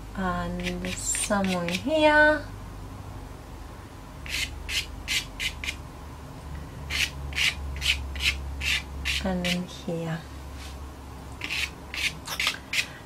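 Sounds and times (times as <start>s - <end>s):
pastel stick scratching on paper: 0.6s - 1.8s, 4.3s - 5.8s, 6.9s - 9.6s, 11.4s - 12.9s.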